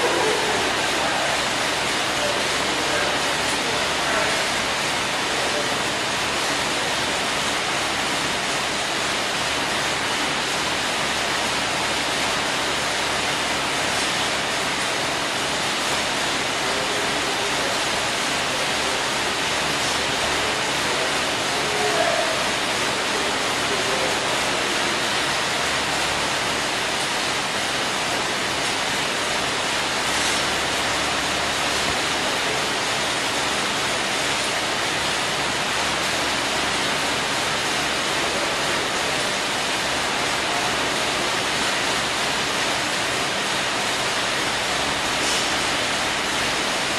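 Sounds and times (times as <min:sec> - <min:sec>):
air bike fans rushing: 0:00.0 - 0:46.9.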